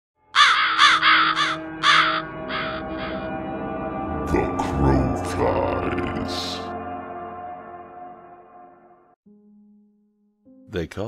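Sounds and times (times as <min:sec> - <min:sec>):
crow cawing: 0:00.3 - 0:03.3.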